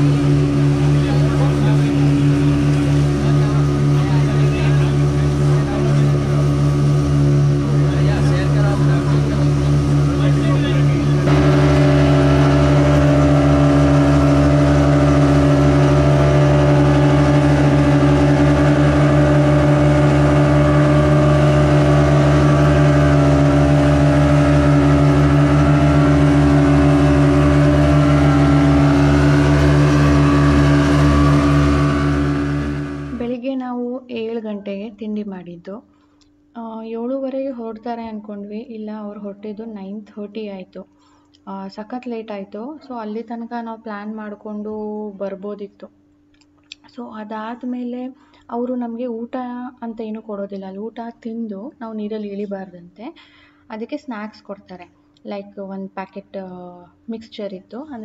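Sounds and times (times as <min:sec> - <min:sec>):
boat wake rushing: 0:00.0 - 0:33.4
outboard motors droning: 0:00.0 - 0:33.8.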